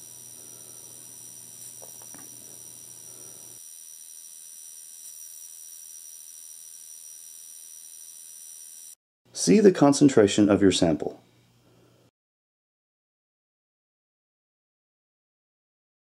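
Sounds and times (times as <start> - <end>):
high-pitched electronic whine: 0.0 - 9.0.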